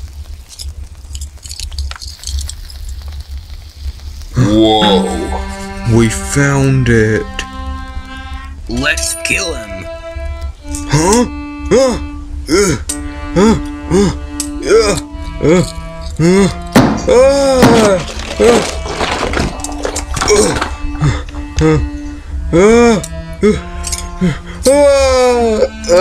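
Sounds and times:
short fighting cries: 0:04.4 - 0:05.7
background music with held notes: 0:04.4 - 0:26.0
knocks: 0:16.7 - 0:20.8.

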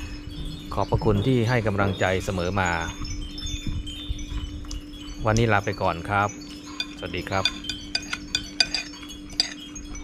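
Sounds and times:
wind chimes ringing: 0:00.0 - 0:10.0.

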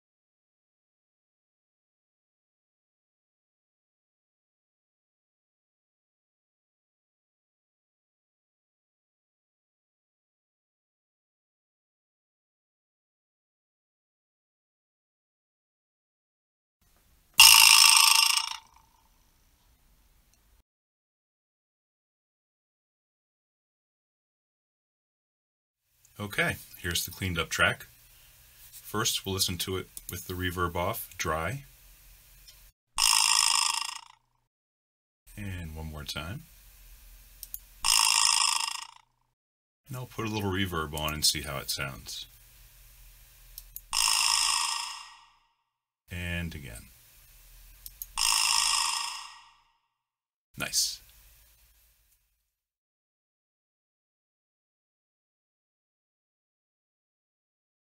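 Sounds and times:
vibraslap buzzing rattle: 0:17.4 - 0:19.0, 0:33.0 - 0:34.2, 0:37.4 - 0:39.0, 0:43.8 - 0:45.4, 0:47.9 - 0:49.6.

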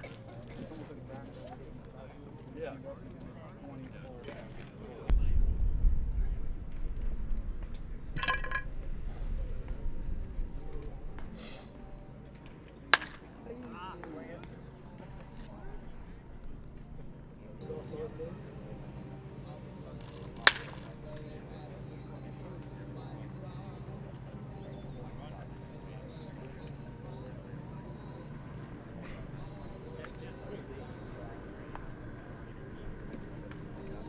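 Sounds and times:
faint distant voices: 0:00.0 - 0:34.0
low rumble: 0:05.1 - 0:11.3
baseball bat cracking ball: 0:12.9 - 0:13.3, 0:20.1 - 0:20.9.

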